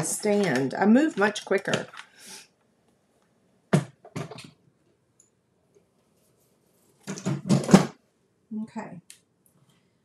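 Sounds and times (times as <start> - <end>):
knocks and rustles from handling: 3.7 - 4.6, 7.0 - 8.0
knocks and clatter: 7.1 - 8.0.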